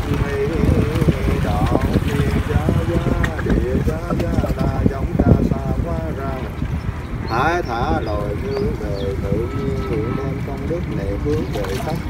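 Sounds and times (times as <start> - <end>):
person chanting: 0.0 - 6.6, 7.3 - 12.0
wind buffeting microphone: 0.0 - 12.0.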